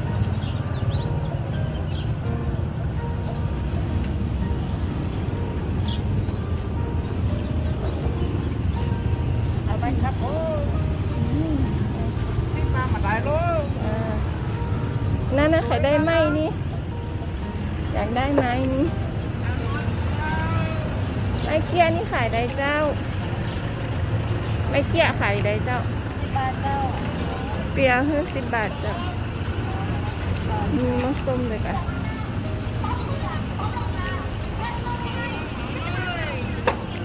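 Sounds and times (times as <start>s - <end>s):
woman's voice: 12.6s - 14.4s, 15.3s - 16.6s, 17.9s - 18.9s, 24.7s - 29.2s, 30.5s - 35.5s.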